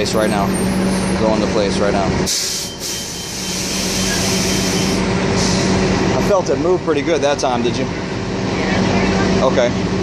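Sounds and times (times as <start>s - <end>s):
heavy vehicle engine running: 0.0s - 10.0s.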